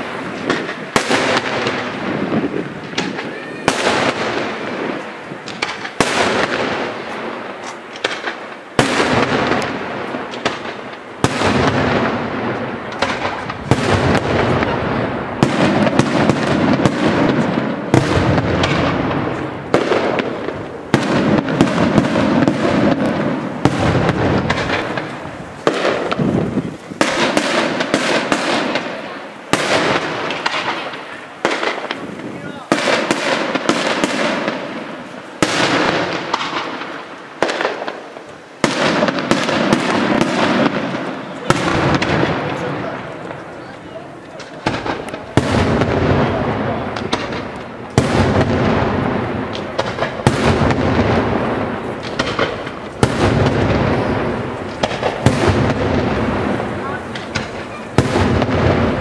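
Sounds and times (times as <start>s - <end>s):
firework shells bursting: 0.0s - 59.0s.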